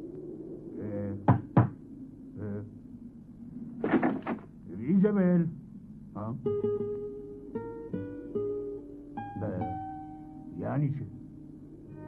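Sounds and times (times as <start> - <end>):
knocks on a door: 1.3 - 1.8.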